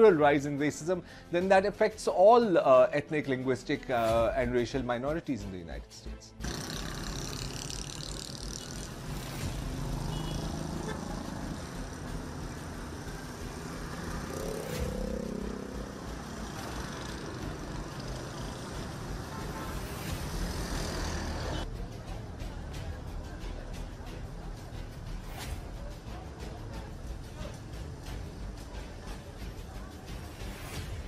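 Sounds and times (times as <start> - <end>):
engine note rising and falling: 6.4 - 21.6
cars and motorcycles passing: 6.4 - 31.0.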